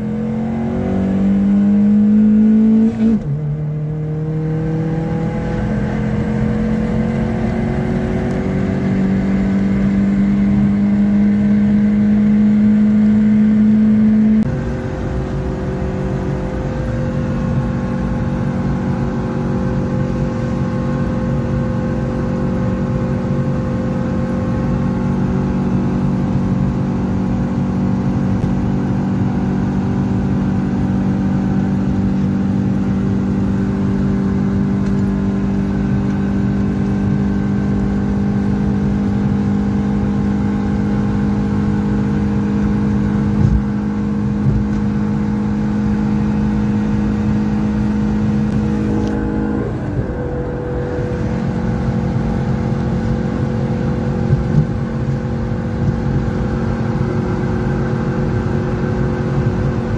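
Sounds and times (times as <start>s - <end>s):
car engine droning inside cabin: 0.0s - 59.9s.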